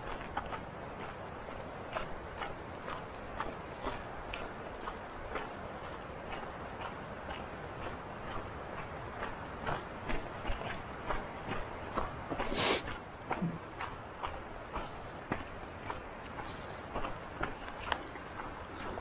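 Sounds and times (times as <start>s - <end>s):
footsteps crunching on dirt trail: 0.0s - 19.0s.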